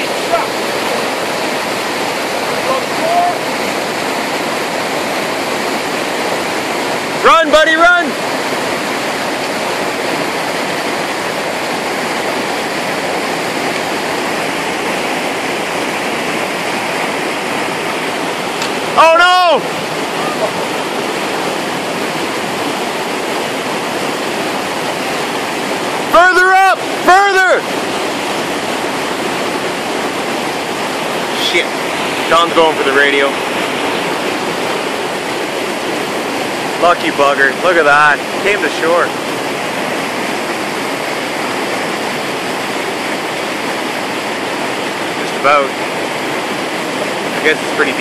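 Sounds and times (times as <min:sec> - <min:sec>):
river rushing over shallows: 0:00.0 - 0:48.0.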